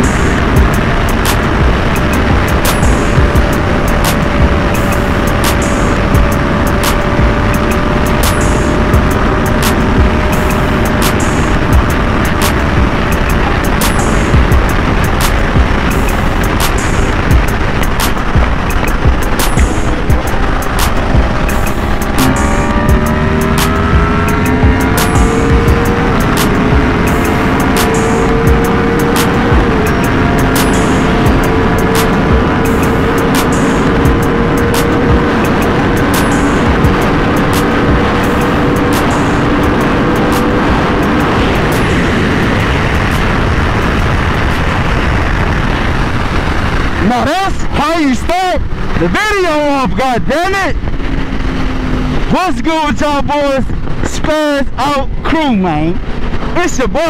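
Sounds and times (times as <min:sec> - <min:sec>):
motorcycle engine at speed: 0:00.0 - 0:57.0
wind rush: 0:00.0 - 0:57.0.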